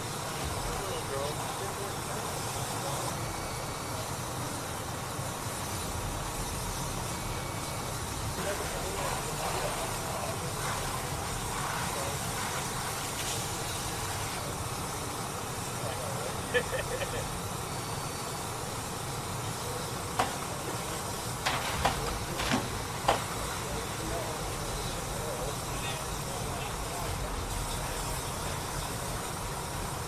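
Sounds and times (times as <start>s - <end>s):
vehicle engines rumbling: 0.0s - 30.0s
faint distant voices: 0.1s - 30.0s.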